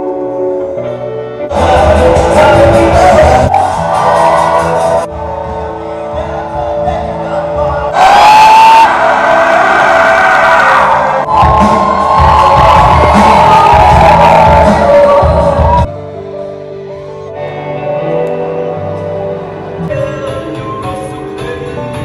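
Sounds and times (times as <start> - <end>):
live rock band music: 0.0 - 22.0
person singing: 1.5 - 9.0, 11.3 - 15.9, 18.0 - 22.0
crowd cheering: 1.5 - 15.9
steady drum beat: 11.3 - 15.9.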